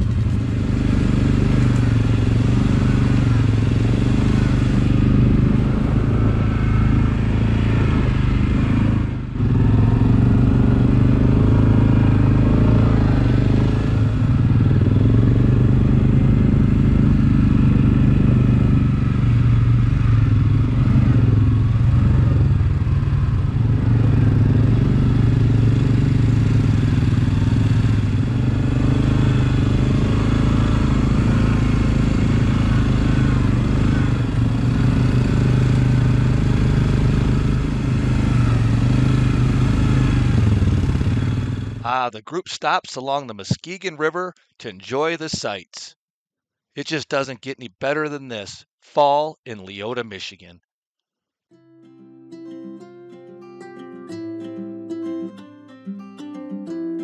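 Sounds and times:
quad bike engine running: 0.0s - 42.1s.

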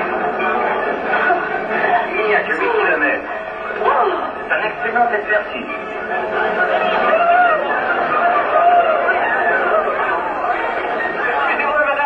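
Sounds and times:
several voices chattering: 0.0s - 12.0s.

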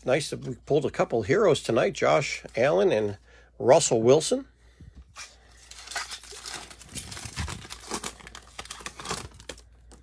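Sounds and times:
foil wrapper tearing and crinkling: 5.6s - 10.0s.

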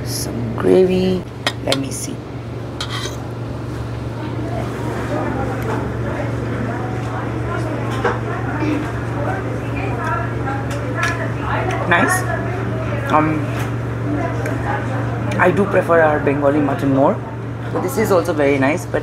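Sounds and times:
murmur of diners' conversation: 0.0s - 19.0s
steady low hum: 0.0s - 19.0s
cutlery clinking on metal plate: 2.8s - 3.2s.

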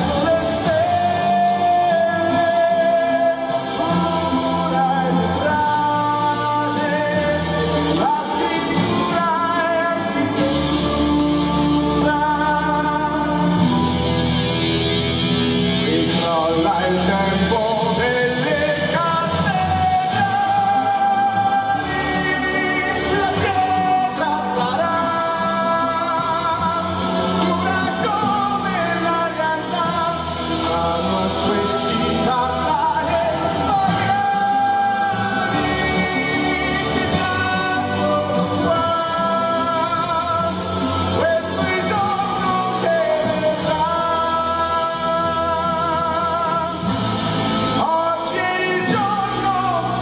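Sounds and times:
band accompaniment: 0.0s - 50.0s
man singing with vibrato: 0.0s - 50.0s.

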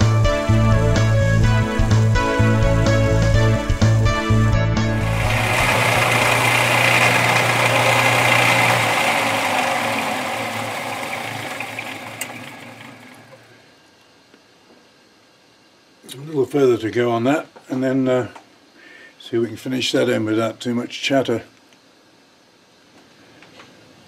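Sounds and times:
background music: 0.0s - 6.2s
metal lathe running: 5.0s - 13.5s.

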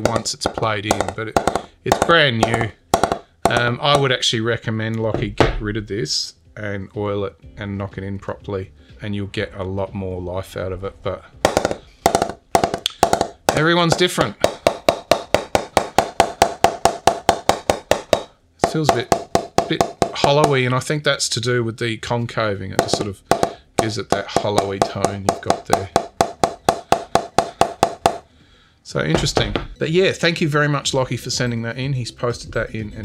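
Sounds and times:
mallet tapping cricket bat: 0.0s - 4.2s, 11.4s - 20.8s, 22.8s - 28.3s.

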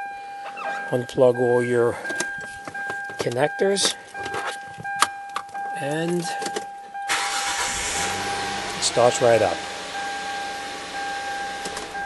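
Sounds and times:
car engine idling: 7.1s - 12.0s
high engine whine: 7.1s - 12.0s.

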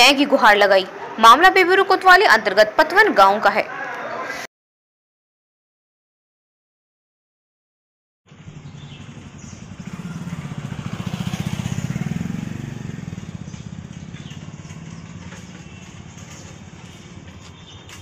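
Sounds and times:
motor vehicle passing: 8.3s - 18.0s.

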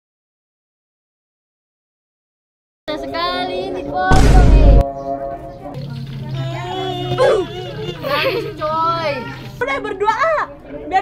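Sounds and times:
girls' voices: 6.3s - 11.0s.

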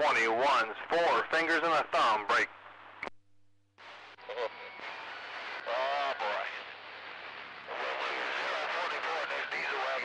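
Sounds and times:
radio static hiss: 0.0s - 3.1s, 3.8s - 10.0s.

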